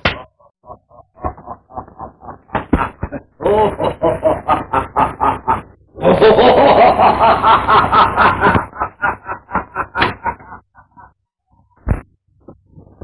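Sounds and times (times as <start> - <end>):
man laughing: 0.6 - 11.2.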